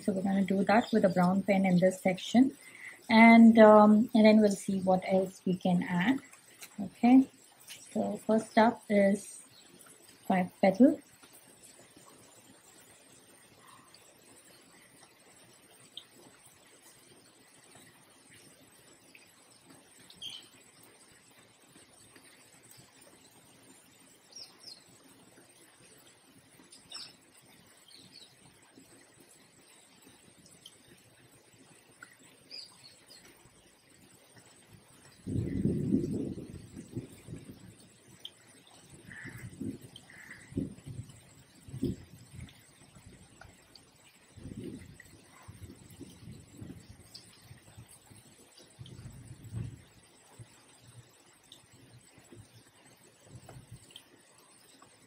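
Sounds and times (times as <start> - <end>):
faint bird chirps: 20.2 - 20.6.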